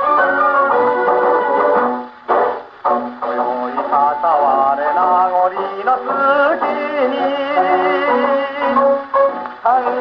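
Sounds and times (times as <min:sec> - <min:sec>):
male baritone singing: 0:03.2 - 0:10.0.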